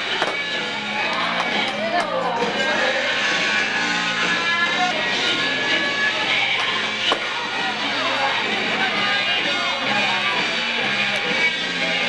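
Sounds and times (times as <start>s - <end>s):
faint rock music: 0.0s - 12.0s.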